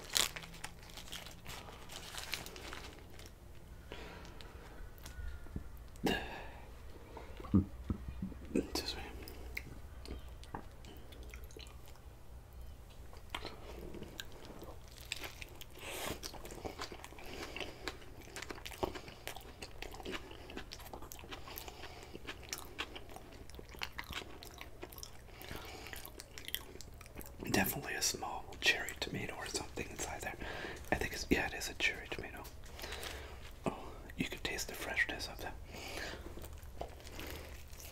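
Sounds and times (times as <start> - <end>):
steady low hum: 0.0 - 37.9
close-up chewing with mouth clicks: 9.2 - 12.1, 13.0 - 27.5, 35.9 - 37.9.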